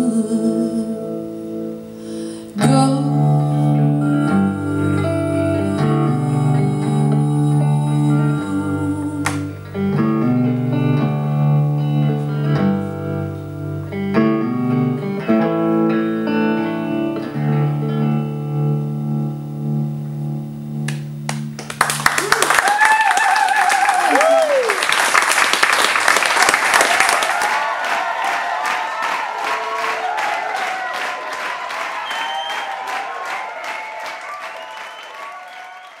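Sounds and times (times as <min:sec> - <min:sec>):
electric guitar playing: 0:00.0 - 0:22.0
audience applauding and cheering: 0:21.3 - 0:36.0
person whooping: 0:22.2 - 0:24.9.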